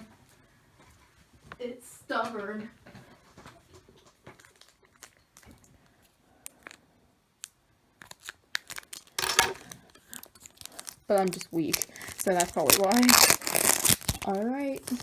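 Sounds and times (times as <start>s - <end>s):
foil wrapper crinkling: 4.3s - 5.7s, 7.4s - 15.0s
foil wrapper ripping: 7.4s - 15.0s.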